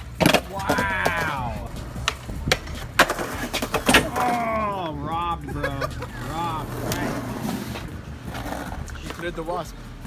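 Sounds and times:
skateboard clacking on concrete: 0:00.0 - 0:04.5
skateboard rolling: 0:00.0 - 0:04.6, 0:05.8 - 0:09.5.

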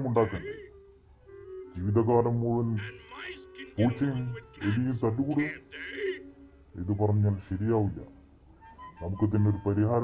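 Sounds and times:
background music: 0:00.0 - 0:10.0
cartoon character voice: 0:02.8 - 0:04.8, 0:05.4 - 0:06.2.

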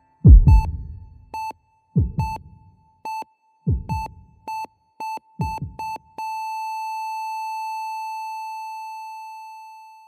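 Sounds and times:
heart monitor beeps: 0:00.3 - 0:02.4, 0:03.1 - 0:07.9.

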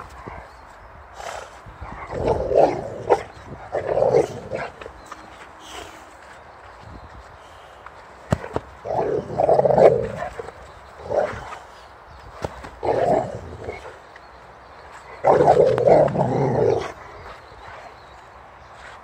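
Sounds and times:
dog growling: 0:08.8 - 0:11.5, 0:15.2 - 0:17.4.

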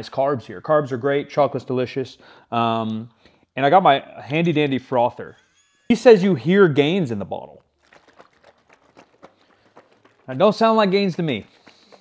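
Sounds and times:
carton of liquid being shaken: 0:07.6 - 0:12.0.

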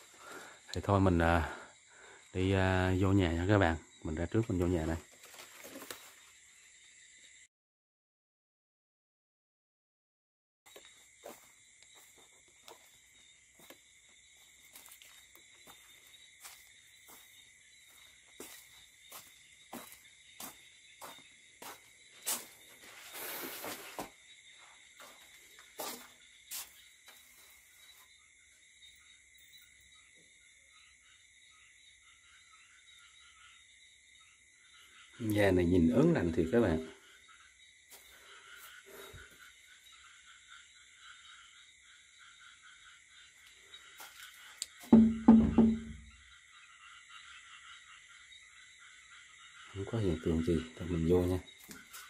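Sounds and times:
crickets chirring: 0:00.0 - 0:07.5, 0:10.7 - 0:52.0
footsteps on dirt: 0:10.7 - 0:28.1, 0:44.0 - 0:46.0, 0:51.6 - 0:52.0
scuffing rustle: 0:14.5 - 0:24.2, 0:25.0 - 0:27.7.

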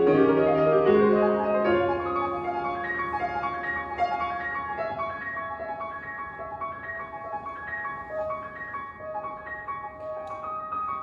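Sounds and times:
solo grand piano melody: 0:00.0 - 0:11.0.

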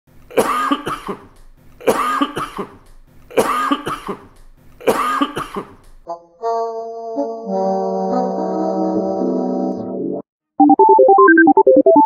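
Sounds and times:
man coughing: 0:00.3 - 0:05.9.

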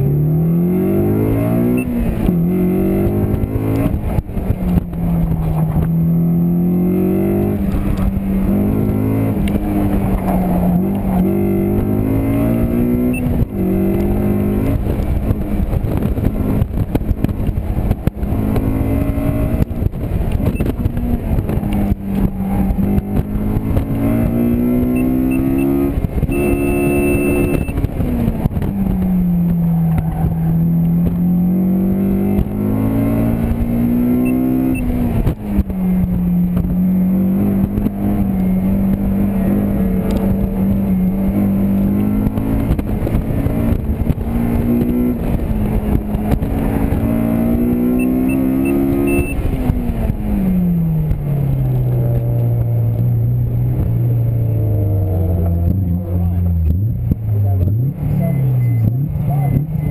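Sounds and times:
car engine revving hard: 0:00.0 - 0:51.5
high beep: 0:01.7 - 0:02.0, 0:13.0 - 0:13.3, 0:24.9 - 0:27.8, 0:34.2 - 0:34.9, 0:47.9 - 0:49.4, 0:58.2 - 0:59.9.

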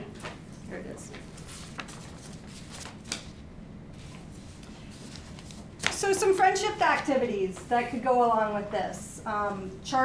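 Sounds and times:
paper rustling: 0:01.1 - 0:03.4, 0:04.0 - 0:07.1.

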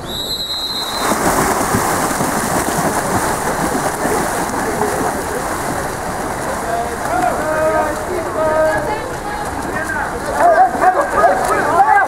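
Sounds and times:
referee's whistle blast: 0:00.0 - 0:01.2
loud splashing of swimmers: 0:00.0 - 0:12.0.

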